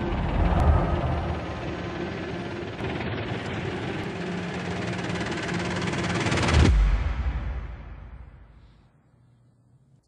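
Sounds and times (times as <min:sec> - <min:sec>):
low held tones: 0:00.0 - 0:02.8
noisy drone with fluttering pulse: 0:00.0 - 0:06.8.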